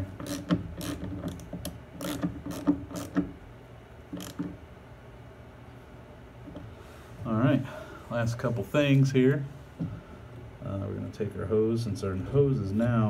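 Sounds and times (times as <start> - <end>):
hand ratchet clicking: 0.0 - 3.3, 4.1 - 4.6.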